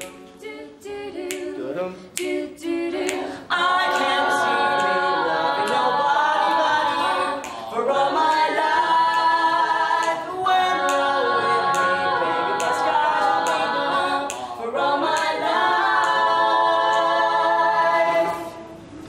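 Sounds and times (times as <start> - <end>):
group singing a cappella: 0.0 - 18.9.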